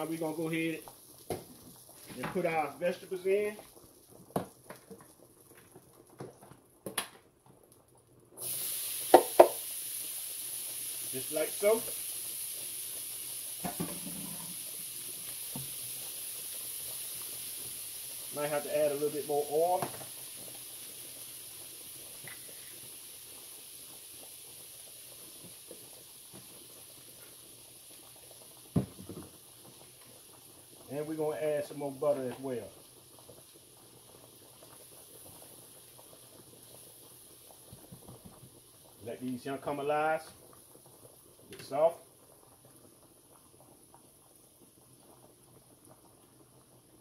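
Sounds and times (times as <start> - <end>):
vegetables sizzling in a skillet: 0.0 - 5.2, 8.4 - 46.9.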